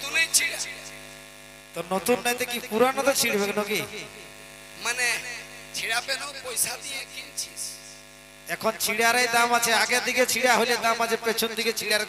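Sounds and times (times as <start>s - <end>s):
man speaking into a microphone: 0.0s - 1.0s, 1.7s - 4.2s, 4.8s - 12.0s
electrical hum from speakers: 0.0s - 12.0s.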